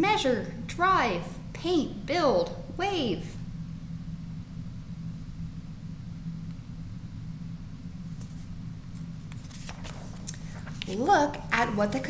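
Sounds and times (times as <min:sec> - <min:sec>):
low room hum: 0:00.0 - 0:12.0
paper page rustling: 0:08.1 - 0:12.0.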